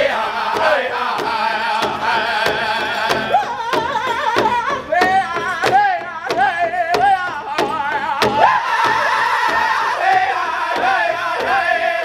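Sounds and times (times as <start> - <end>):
large drum beating: 0.0 - 12.0
voices singing in unison: 0.0 - 12.0.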